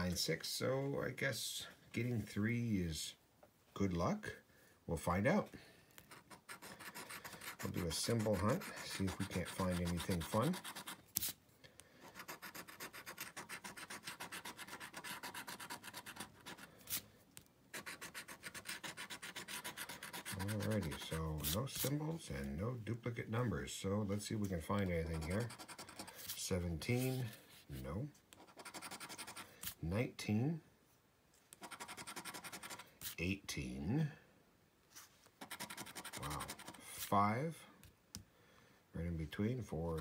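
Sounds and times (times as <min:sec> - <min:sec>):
lottery ticket being scratched: 0:06.1 - 0:11.4, 0:12.0 - 0:17.0, 0:17.7 - 0:22.0, 0:24.6 - 0:27.4, 0:28.4 - 0:29.8, 0:31.6 - 0:33.2, 0:35.4 - 0:37.2.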